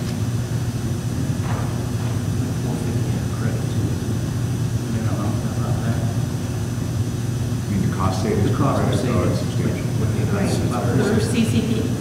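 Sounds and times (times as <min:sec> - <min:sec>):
low hum of a large hall: 0:00.0 - 0:12.0.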